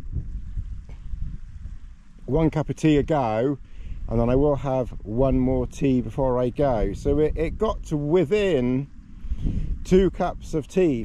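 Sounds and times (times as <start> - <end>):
wind buffeting microphone: 0.0 - 11.0
speech: 2.3 - 8.9, 9.8 - 11.0.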